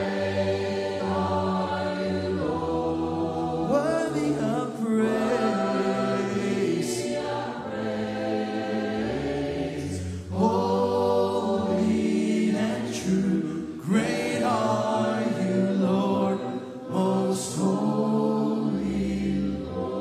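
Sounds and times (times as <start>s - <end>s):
amplified song leader voice: 0.0s - 20.0s
congregation singing a cappella: 0.0s - 20.0s.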